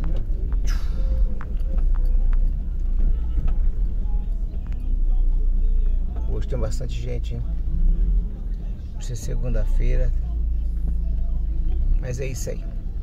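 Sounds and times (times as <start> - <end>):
heavy low rumble: 0.0 - 13.0.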